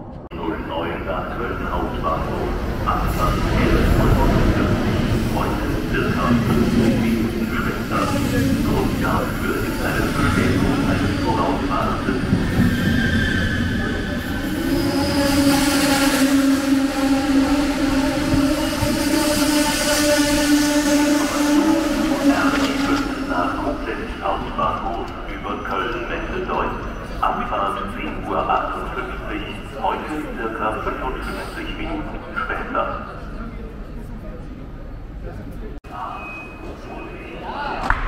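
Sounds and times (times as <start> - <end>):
train wheels rumbling: 0.6 - 33.2
train brakes squealing: 9.4 - 17.6, 35.9 - 37.4.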